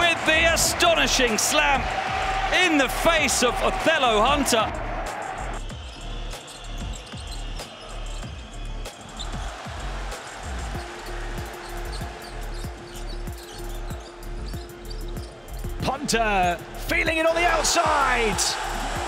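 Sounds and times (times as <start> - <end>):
arena noise: 0.0 - 19.0.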